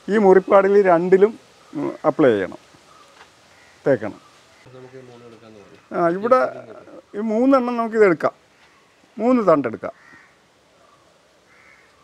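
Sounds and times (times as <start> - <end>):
faint short bird calls: 2.8 - 4.8, 9.9 - 12.0.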